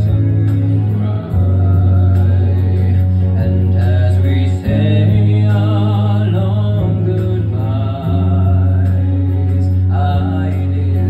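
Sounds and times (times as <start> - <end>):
man singing into a microphone: 0.0 - 11.0
sustained low accompaniment: 0.0 - 11.0.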